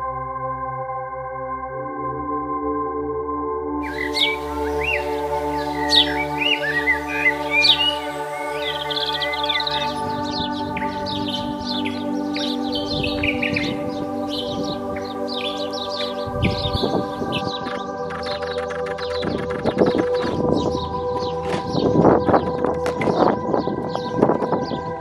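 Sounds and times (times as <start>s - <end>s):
ambient music held tones: 0.0s - 25.0s
small birds chirping: 3.8s - 25.0s.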